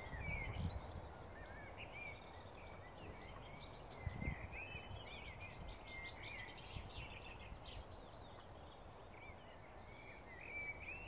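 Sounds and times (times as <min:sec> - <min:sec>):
songbirds singing: 0:00.0 - 0:11.0.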